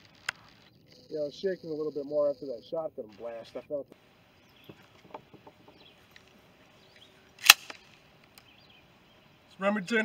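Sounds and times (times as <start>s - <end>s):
shotgun handling clicks and knocks: 4.6s - 8.5s
sharp loud shotgun click: 7.4s - 7.8s.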